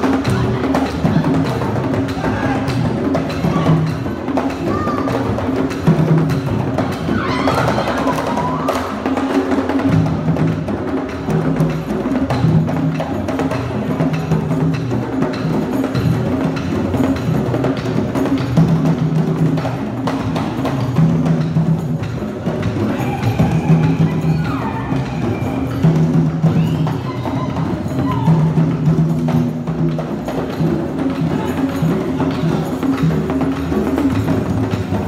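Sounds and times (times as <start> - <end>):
high wavering cry: 7.0 - 9.2, 22.8 - 28.8.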